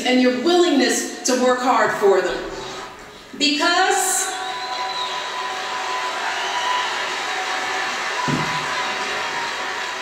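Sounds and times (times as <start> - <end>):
crowd applauding and cheering: 4.4 - 10.0.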